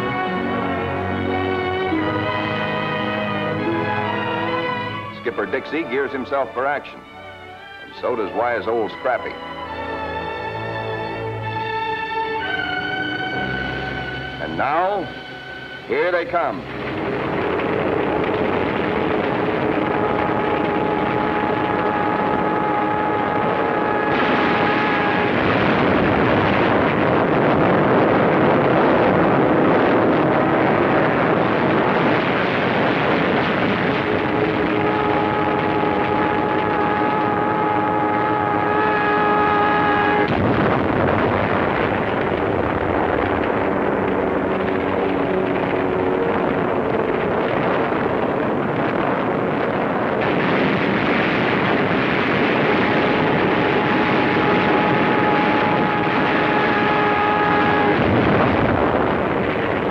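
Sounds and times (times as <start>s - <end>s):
anti-aircraft fire: 0.0s - 6.8s, 12.4s - 59.9s
aircraft roaring: 0.0s - 59.9s.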